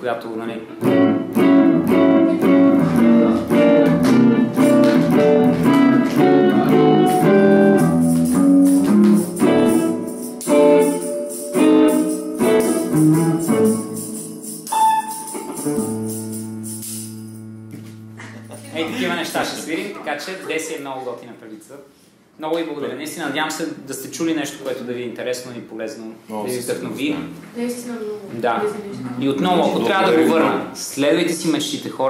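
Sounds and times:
jazz electric guitar playing: 0.7s - 19.2s.

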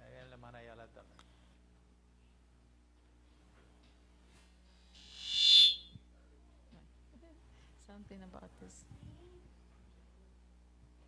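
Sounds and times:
sound system feedback squeal: 5.0s - 5.9s.

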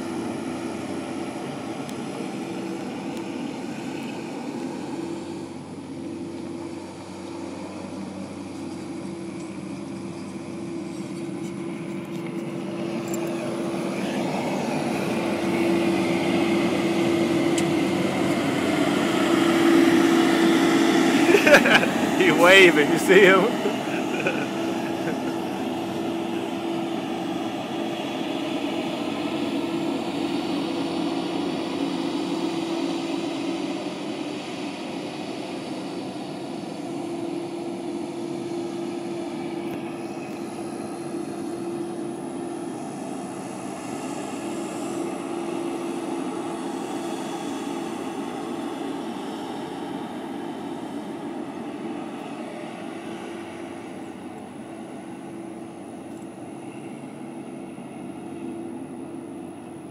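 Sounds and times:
distant truck diesel engine: 0.0s - 59.9s.

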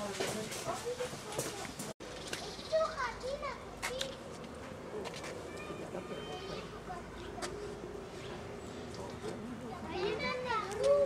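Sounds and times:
children calling and chattering: 0.4s - 11.0s.

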